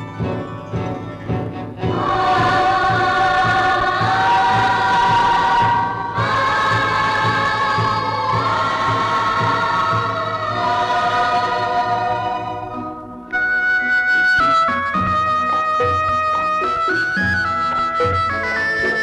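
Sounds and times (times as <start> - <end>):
orchestral backing: 0.0 - 19.0
low drum pulse: 1.8 - 12.1
choir singing held chords: 1.8 - 13.6.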